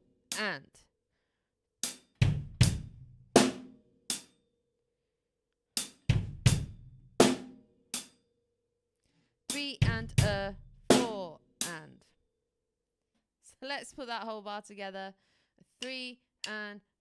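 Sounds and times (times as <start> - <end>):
bass drum: 2.2 - 3.6, 6.1 - 7.5, 9.6 - 11.8.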